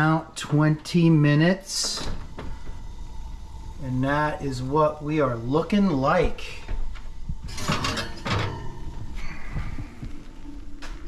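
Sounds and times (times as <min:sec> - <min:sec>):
glass dish scraping metal rack: 0:07.5 - 0:08.9.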